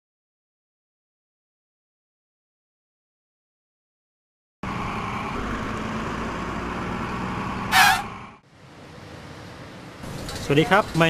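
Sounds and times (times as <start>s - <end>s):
outdoor ambience: 4.6s - 11.0s
road traffic rumble: 4.6s - 11.0s.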